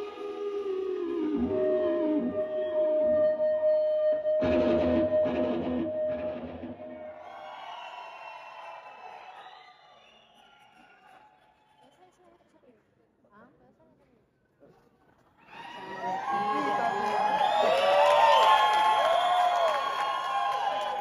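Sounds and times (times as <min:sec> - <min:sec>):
electric guitar solo: 0:00.0 - 0:07.1.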